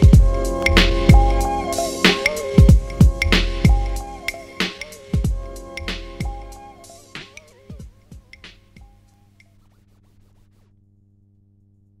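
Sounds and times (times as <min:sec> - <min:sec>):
dj scratch pitch sweeps: 0:00.0 - 0:08.9.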